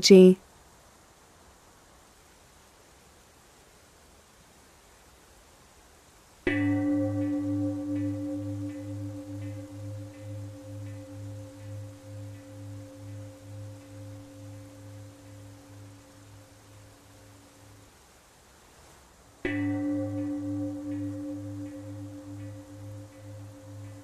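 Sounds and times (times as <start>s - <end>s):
singing bowl ringing: 6.5s - 17.9s, 19.4s - 24.0s.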